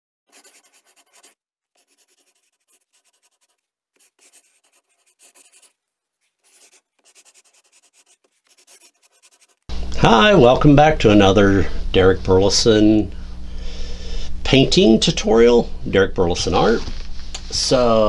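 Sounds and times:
pencil scratching on paper: 0.3 - 9.7.

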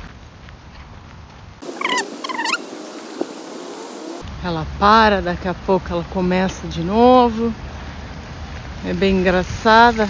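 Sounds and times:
bird calling: 1.6 - 4.2
steady hiss: 1.6 - 4.2.

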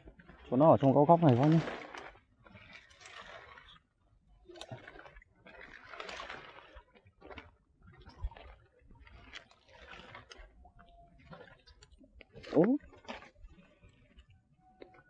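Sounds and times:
water splashing: 0.0 - 15.0.

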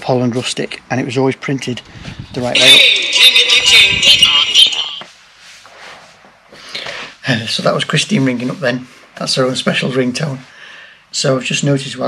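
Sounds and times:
person rustling in a seat: 2.7 - 6.6.

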